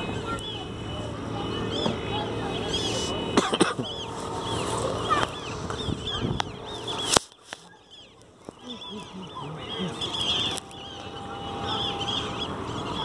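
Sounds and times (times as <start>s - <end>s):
birds chirping: 0.0s - 13.0s
outdoor background din: 0.0s - 13.0s.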